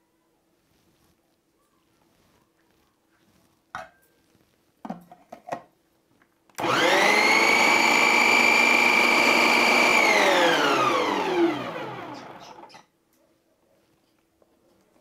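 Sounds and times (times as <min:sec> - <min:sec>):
mixer grinder motor whine: 0:06.6 - 0:12.7.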